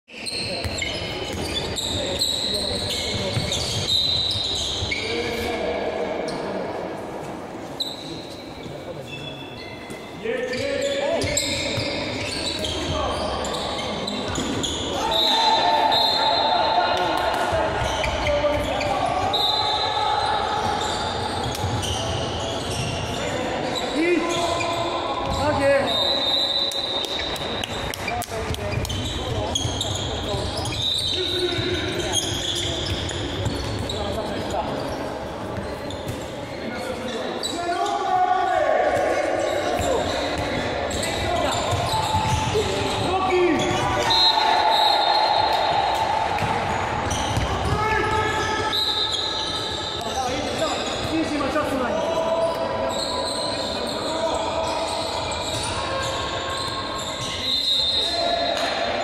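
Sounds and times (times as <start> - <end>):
ball bouncing on court floor: 0.6 - 1.8, 27.0 - 30.0, 39.7 - 43.9, 45.5 - 48.4
players shouting: 40.9 - 48.7.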